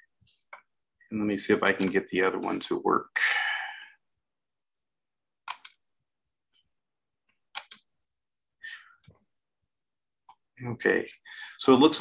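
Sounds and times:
computer mouse clicks: 5.4 - 5.8, 7.4 - 7.9.

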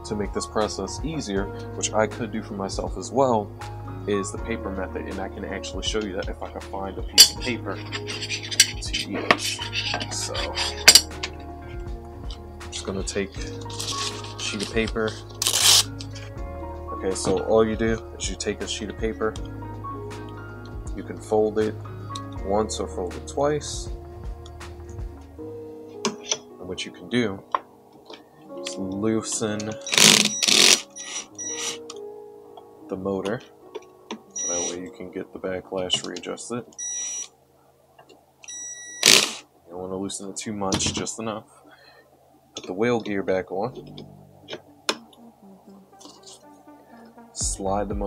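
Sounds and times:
background music: 0.0 - 48.0
paper tearing: 15.4 - 15.9, 29.9 - 31.8
cordless drill motor whining: 29.8 - 31.8, 38.5 - 39.4.

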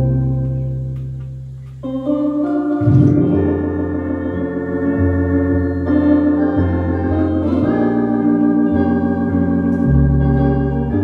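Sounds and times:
electronic organ playing: 0.0 - 11.0.

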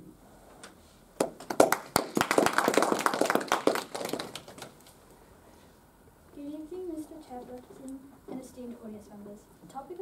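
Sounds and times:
people applauding: 1.2 - 4.8.

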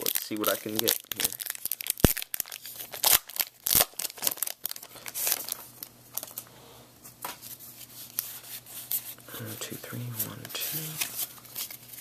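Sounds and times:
foil wrapper tearing and crinkling: 0.0 - 6.4
soft rustling of cards: 4.8 - 12.0.

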